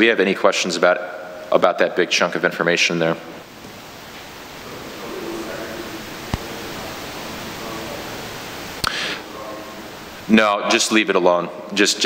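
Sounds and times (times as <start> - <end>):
steady room hiss: 0.0 - 12.0.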